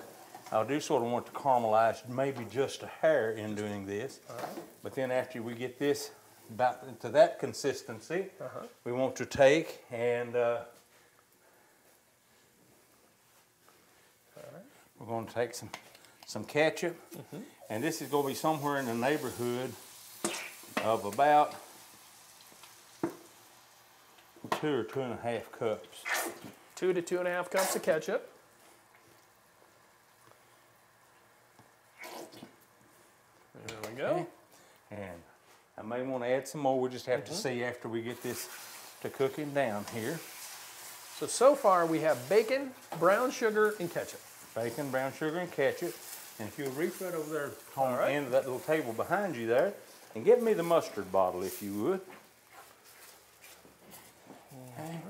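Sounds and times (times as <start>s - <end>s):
squeeze bottle squelching: 25.9s - 26.6s
spatula scraping a skillet: 38.1s - 48.9s.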